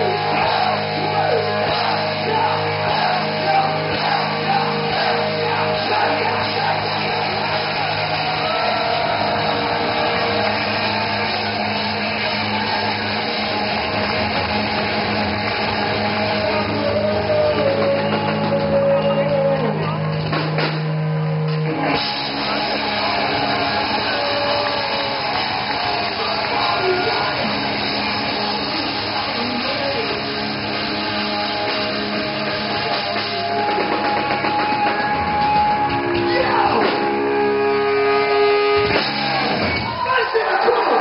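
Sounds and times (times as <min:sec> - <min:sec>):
live hard rock band: 0:00.0 - 0:41.0.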